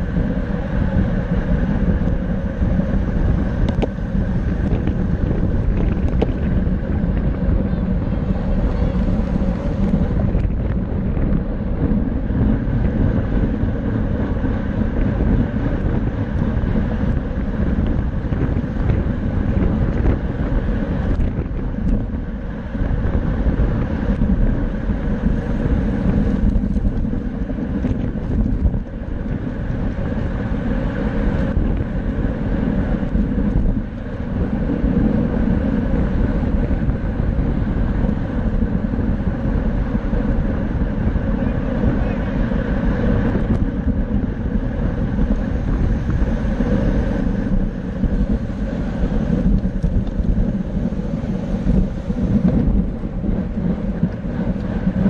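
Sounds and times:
road and tyre noise: 0:00.0 - 0:55.0
wind rushing over microphone: 0:00.0 - 0:55.0.

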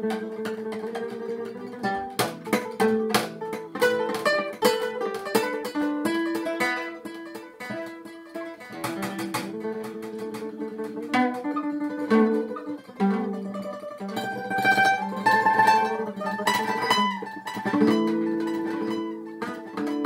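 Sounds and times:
fingerpicked acoustic guitar: 0:00.0 - 0:20.0.

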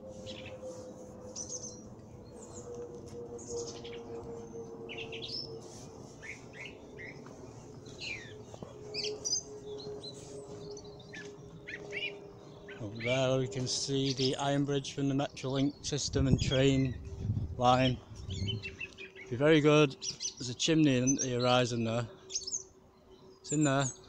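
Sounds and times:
faint hum: 0:00.0 - 0:24.0
small birds chirping: 0:00.2 - 0:24.0.

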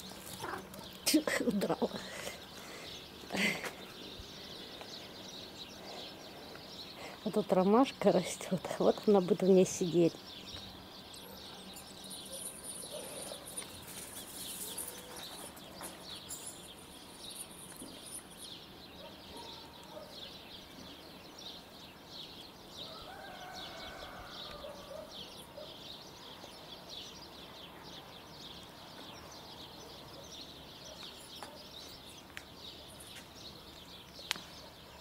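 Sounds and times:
small birds chirping: 0:00.0 - 0:35.0.

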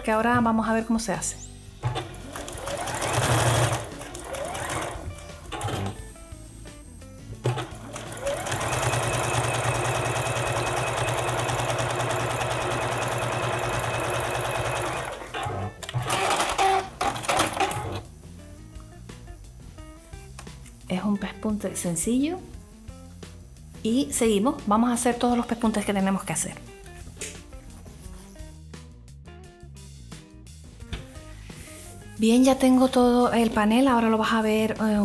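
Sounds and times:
sewing machine stitching: 0:01.8 - 0:06.0, 0:07.4 - 0:18.0.

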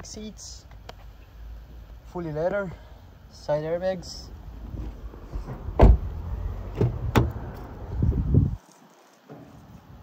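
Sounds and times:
low rumbling handling noise: 0:04.3 - 0:08.6
car door thump: 0:04.7 - 0:07.6.

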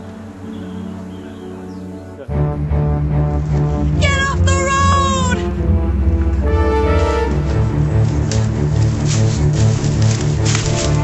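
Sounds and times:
background music: 0:00.0 - 0:11.0
woman yelling: 0:04.0 - 0:05.4.

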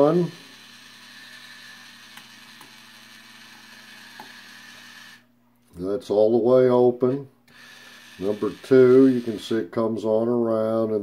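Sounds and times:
small electric motor running: 0:00.0 - 0:05.3, 0:07.5 - 0:09.7.

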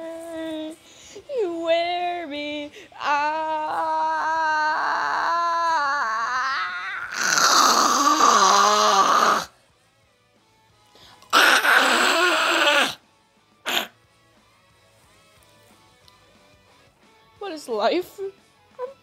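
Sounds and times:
person wailing: 0:03.0 - 0:09.5, 0:11.4 - 0:13.0.

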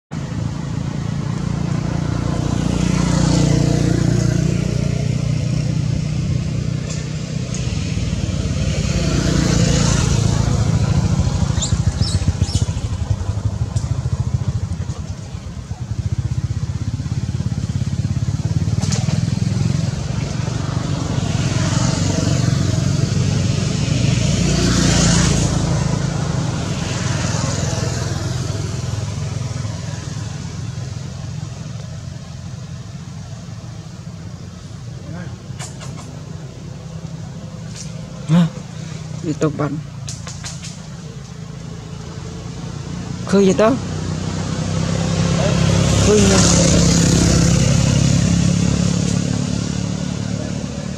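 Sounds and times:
low engine rumble: 0:00.1 - 0:50.9
vehicles passing: 0:00.1 - 0:50.9.

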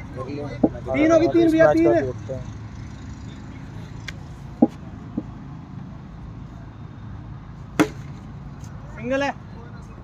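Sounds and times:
cricket bat hitting ball: 0:07.8 - 0:08.2.

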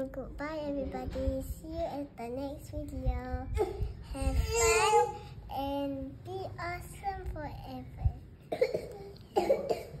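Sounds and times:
person coughing: 0:08.5 - 0:10.0.

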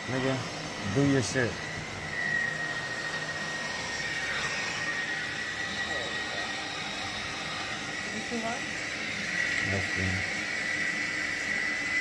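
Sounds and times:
bonnet hair dryer running: 0:00.0 - 0:12.0
high whine: 0:00.0 - 0:12.0.

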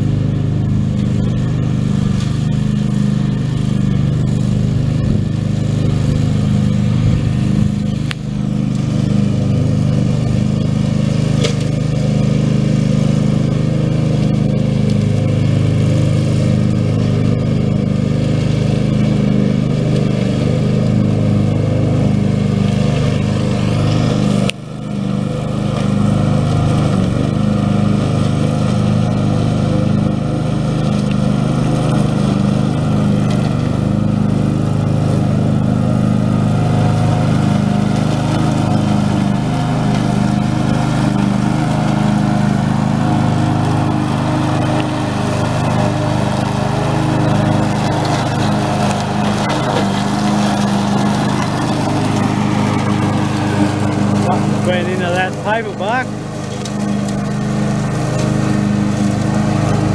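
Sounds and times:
ride-on lawn mower engine running: 0:00.0 - 0:59.9.

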